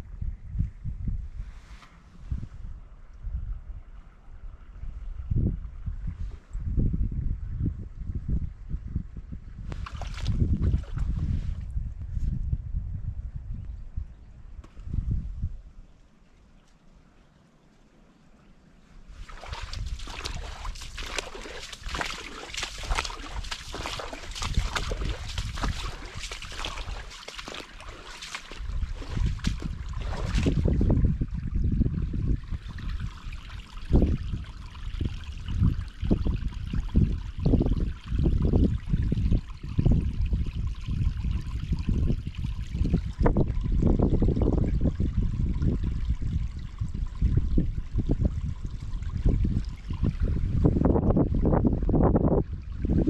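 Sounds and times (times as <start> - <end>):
wind rumbling on microphone: 0.0 - 17.1, 18.8 - 53.0
water trickling: 16.2 - 53.0
footsteps crunching dry grass: 19.2 - 29.8.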